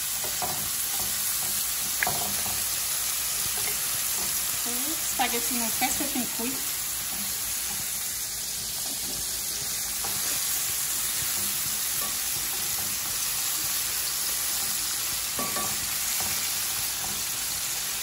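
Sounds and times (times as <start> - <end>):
meat sizzling in oil: 0.0 - 18.0
tongs tapping pan: 0.1 - 4.5, 5.2 - 17.6.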